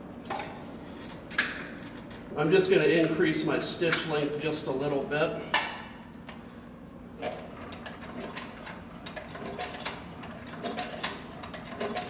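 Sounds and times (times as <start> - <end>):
machine low hum: 0.0 - 12.0.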